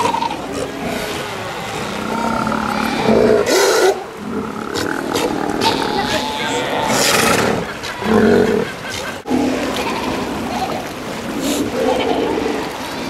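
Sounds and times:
sea lion bulls roaring: 0.0s - 13.0s
sea lions calling: 0.0s - 13.0s.

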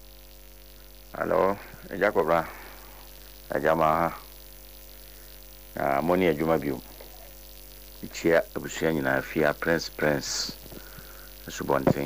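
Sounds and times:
electrical mains hum: 0.0s - 12.0s
person speaking: 1.2s - 2.8s, 5.8s - 7.4s, 8.0s - 10.7s, 11.4s - 12.0s.

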